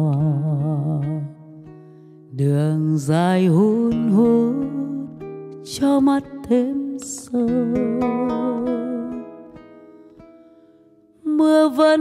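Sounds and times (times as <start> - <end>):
person singing a ballad: 0.0 - 10.2, 11.2 - 12.0
plucked accompaniment notes: 0.0 - 11.8.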